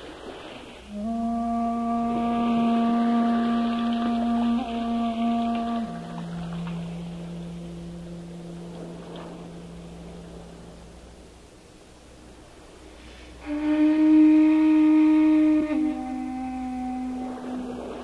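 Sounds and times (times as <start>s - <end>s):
bamboo flute long low notes: 0.6s - 18.0s.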